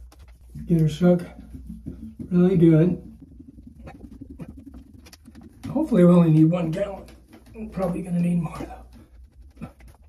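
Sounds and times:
paint can being shaken: 0:00.0 - 0:10.0.

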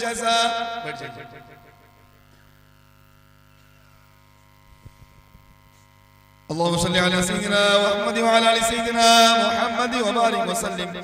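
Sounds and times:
chanting through echoing sound system: 0:00.0 - 0:02.6, 0:06.5 - 0:11.0
electrical hum of loudspeaker system: 0:00.0 - 0:11.0.

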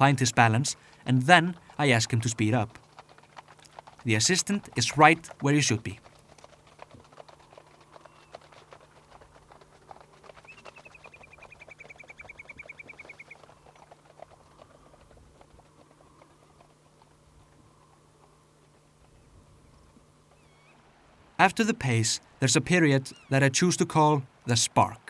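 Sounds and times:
horse hoofbeats on turf: 0:00.0 - 0:20.4
bird's rapid trill: 0:04.8 - 0:16.3.

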